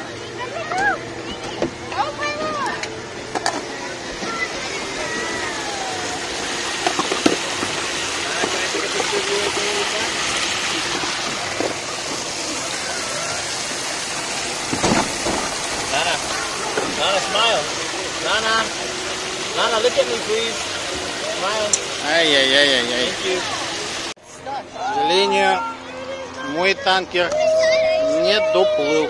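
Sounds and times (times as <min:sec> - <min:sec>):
water rushing and splashing: 0:01.9 - 0:25.5
sharp knocks: 0:14.7 - 0:15.6.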